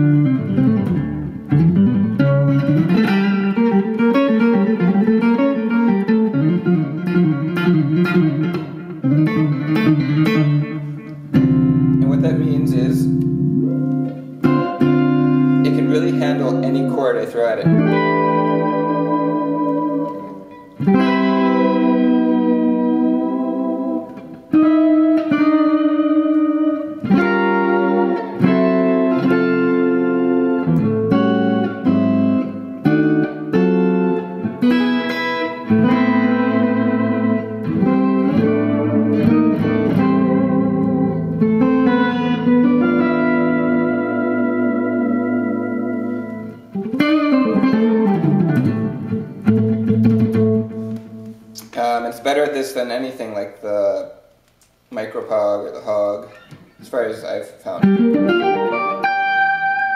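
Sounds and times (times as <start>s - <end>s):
electric guitar chords: 0.0s - 51.8s, 56.2s - 59.9s.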